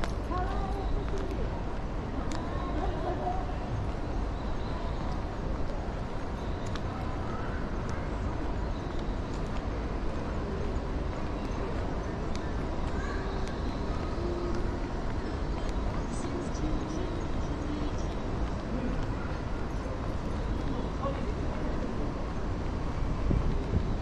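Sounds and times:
footsteps on paving: 0:00.0 - 0:07.2, 0:08.2 - 0:24.0
distant people talking: 0:00.0 - 0:24.0.

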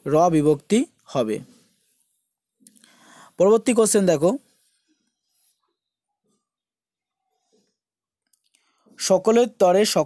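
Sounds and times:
person speaking: 0:00.0 - 0:01.7, 0:02.7 - 0:04.6.

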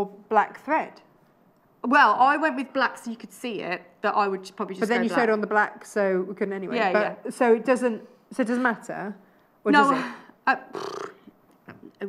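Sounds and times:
woman talking: 0:00.0 - 0:01.1, 0:01.8 - 0:10.8.

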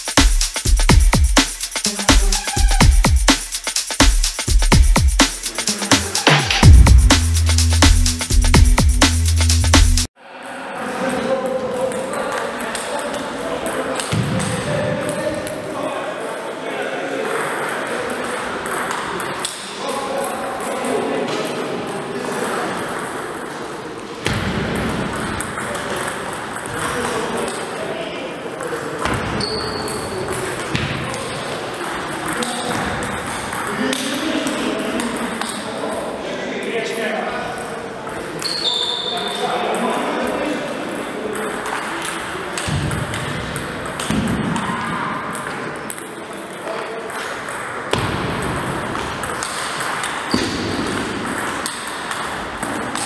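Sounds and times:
people talking: 0:05.5 - 0:06.8, 0:10.2 - 0:24.1, 0:25.4 - 0:44.8.

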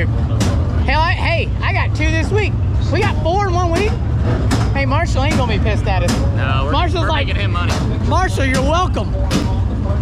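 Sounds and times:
men talking and exclaiming: 0:00.0 - 0:10.0
steady low rumble: 0:00.0 - 0:10.0.

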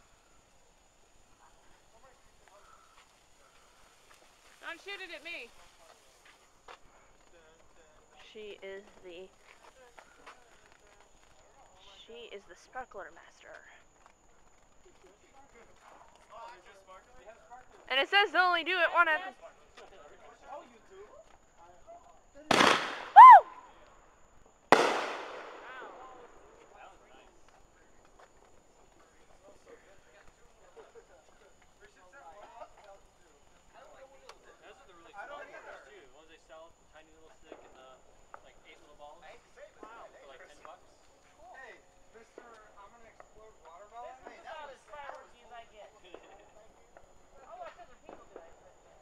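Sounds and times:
people talking in background: 0:00.0 - 0:49.0
firework bangs: 0:22.5 - 0:23.6, 0:24.7 - 0:26.7
high rising-and-falling shriek: 0:23.1 - 0:23.6.

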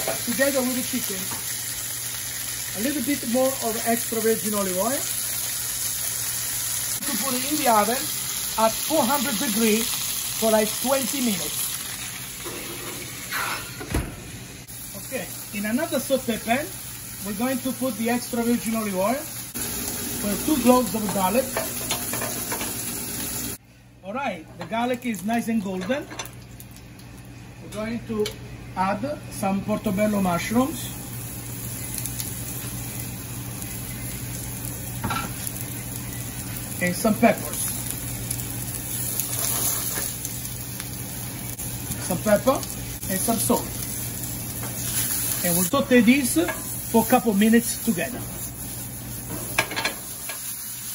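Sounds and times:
vegetables sizzling in oil: 0:00.0 - 0:23.6, 0:29.8 - 0:50.9
frying pan scraping onto oven rack: 0:12.4 - 0:14.3
oven door shutting: 0:12.4 - 0:14.5.

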